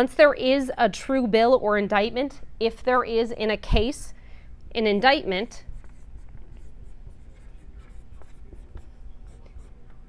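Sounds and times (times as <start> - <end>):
marker scratching on whiteboard: 5.8 - 10.0.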